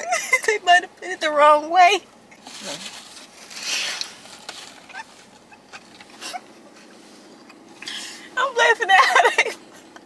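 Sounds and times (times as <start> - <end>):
woman's stifled laughter: 9.0 - 10.0.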